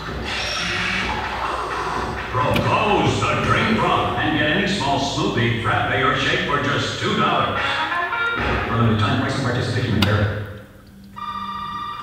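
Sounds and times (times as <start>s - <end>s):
steady electronic tone: 0.0s - 5.6s
voice over music: 0.0s - 11.3s.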